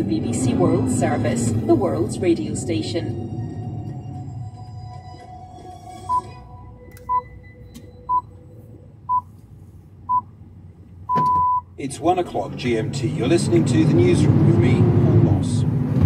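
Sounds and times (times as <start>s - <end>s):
soft radio music: 0.0s - 10.2s
radio time signal beeps: 6.1s - 6.3s.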